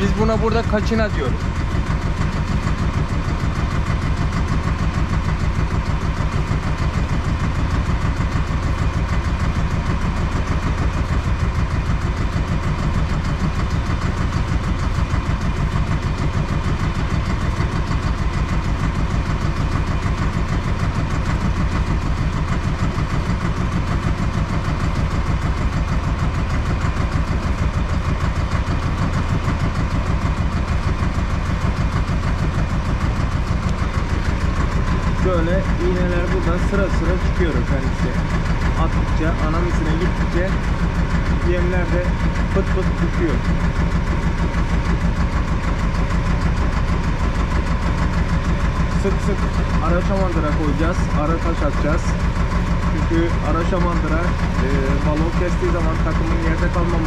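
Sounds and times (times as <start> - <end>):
boat engine running: 0.0 - 57.0.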